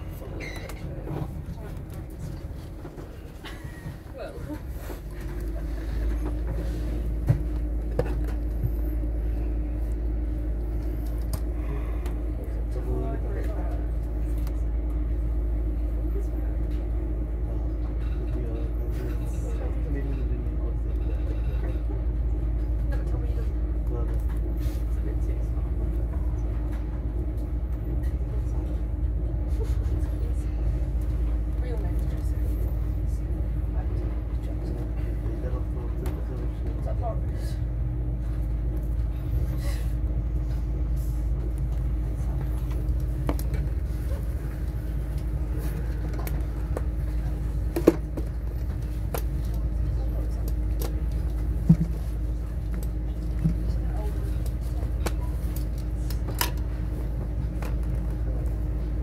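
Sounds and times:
constant hum: 0:00.0 - 0:59.0
train coach interior rumble: 0:00.0 - 0:59.0.

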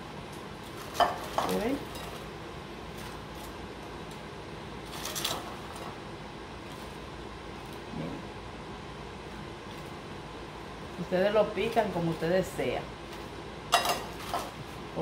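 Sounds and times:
steady room hum: 0:00.0 - 0:15.0
metal tongs clattering: 0:13.7 - 0:14.5.

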